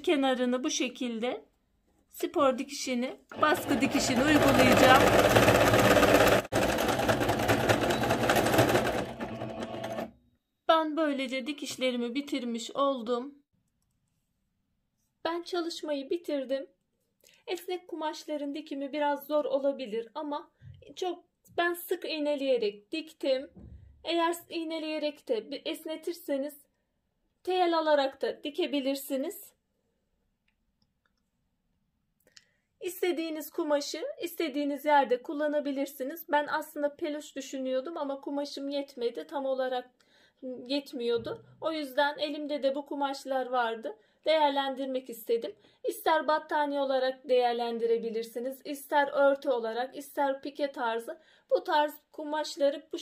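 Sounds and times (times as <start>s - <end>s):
person speaking: 2.2s - 9.5s
sewing machine stitching: 3.3s - 10.2s.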